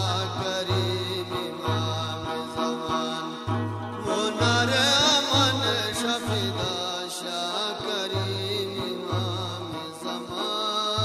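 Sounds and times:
devotional music with held chords: 0:00.0 - 0:11.0.

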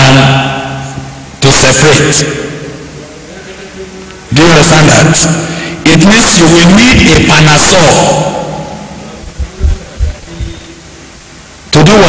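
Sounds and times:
man's voice: 0:03.3 - 0:10.7
microphone handling thumps: 0:09.2 - 0:10.7.

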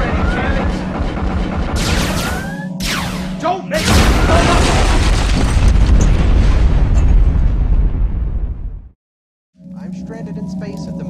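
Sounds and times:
explosion with heavy rumble: 0:03.9 - 0:09.0.

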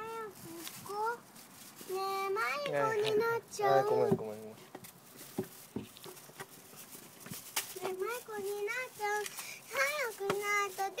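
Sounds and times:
footsteps on concrete: 0:04.0 - 0:08.0
girl singing: 0:07.8 - 0:11.0.

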